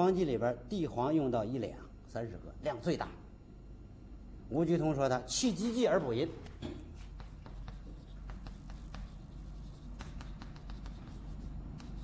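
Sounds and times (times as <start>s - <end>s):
chalk tapping and scratching: 6.5s - 12.0s.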